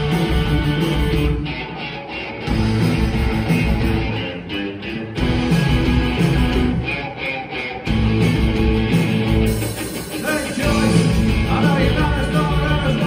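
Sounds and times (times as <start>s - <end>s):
bass guitar: 0.0s - 13.0s
electric guitar: 0.0s - 13.0s.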